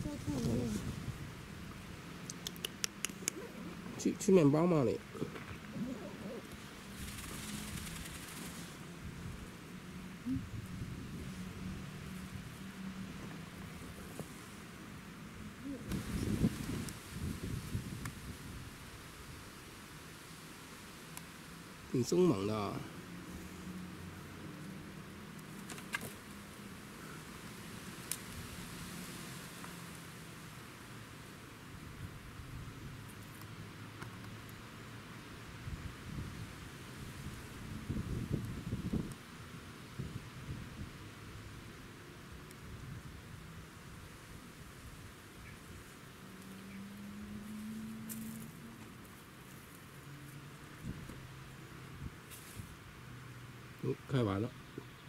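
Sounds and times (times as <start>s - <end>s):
background hiss: 0.0s - 55.0s
feathers rustling: 5.8s - 8.8s.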